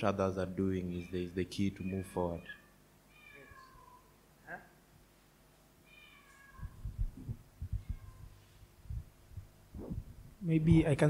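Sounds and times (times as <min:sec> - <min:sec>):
microphone handling bumps: 0:06.6 - 0:10.4.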